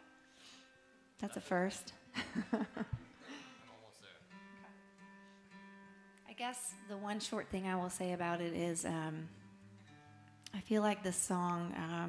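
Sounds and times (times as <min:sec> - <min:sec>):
acoustic guitar chord ringing: 0:00.0 - 0:10.5.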